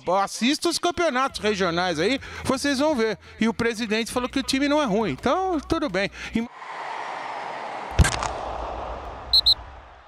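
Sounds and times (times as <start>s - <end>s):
sharp hit with low boom: 7.9s - 10.0s.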